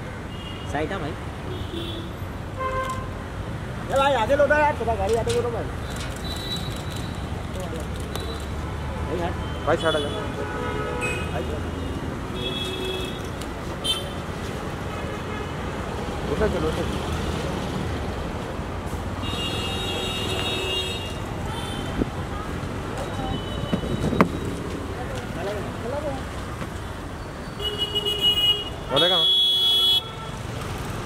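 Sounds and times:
rumble of passing vehicles: 0.0s - 31.0s
street traffic: 0.0s - 31.0s.

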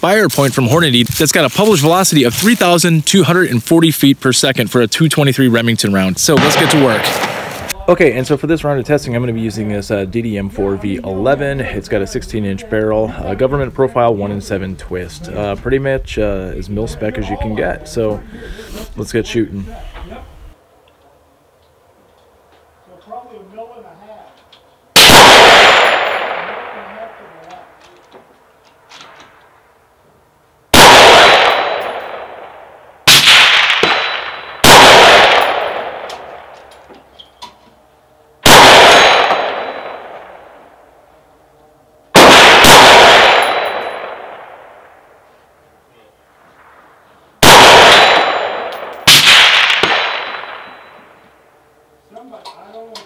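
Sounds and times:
rifle shots with echo: 6.2s - 7.8s, 25.0s - 27.8s, 30.7s - 36.8s, 38.4s - 40.9s, 42.1s - 45.2s, 46.6s - 51.2s.

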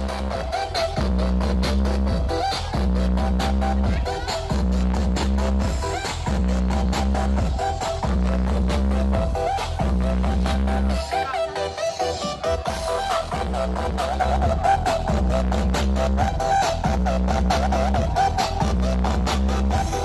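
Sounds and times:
electronic dance music with heavy bass: 0.0s - 20.0s.

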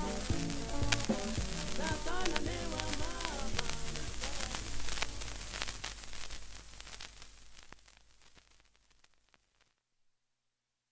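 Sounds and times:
vinyl crackle clicks: 0.0s - 9.8s
vinyl record hiss: 0.0s - 9.9s.

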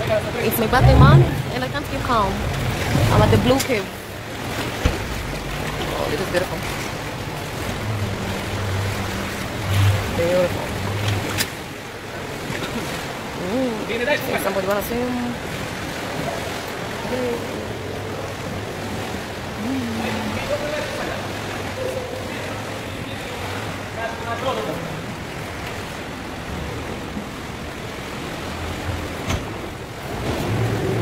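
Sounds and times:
boat noise: 0.0s - 31.0s
sea water rushing: 0.0s - 31.0s
low thump: 4.8s - 5.5s.

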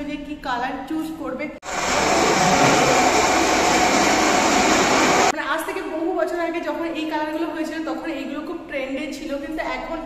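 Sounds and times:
floor polishing machine running: 1.6s - 5.3s.

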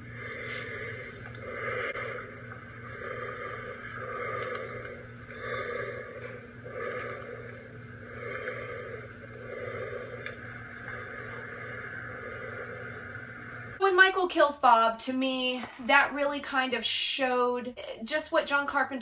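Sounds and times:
heavy breathing through a mask: 0.0s - 13.8s
steady low hum: 0.0s - 19.0s.

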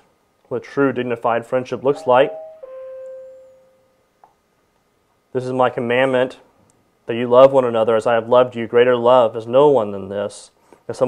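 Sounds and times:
steady ringing tone: 1.9s - 4.0s.

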